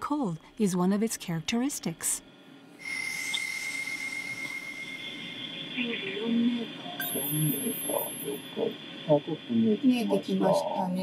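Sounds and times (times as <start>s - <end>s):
steady equipment hiss: 2.7s - 11.0s
high electronic chirps: 2.8s - 8.8s
thin high electronic tone: 2.8s - 8.8s.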